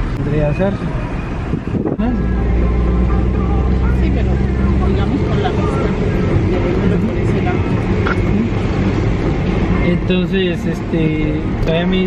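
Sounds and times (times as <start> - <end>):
car engine and road drone: 0.0 - 12.0
people talking: 2.0 - 8.5.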